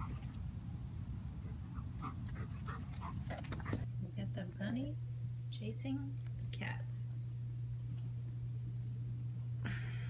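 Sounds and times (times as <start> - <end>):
steady low hum: 0.0 - 10.0
dog panting: 1.5 - 3.9.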